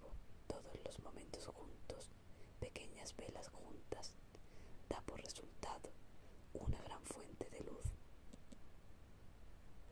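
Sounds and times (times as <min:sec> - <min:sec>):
person whispering: 0:00.0 - 0:04.2, 0:04.9 - 0:06.0, 0:06.6 - 0:08.0.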